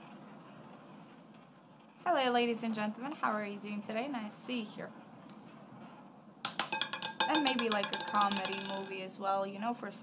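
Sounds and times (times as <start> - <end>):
roulette ball clattering on wheel: 6.4 - 9.2.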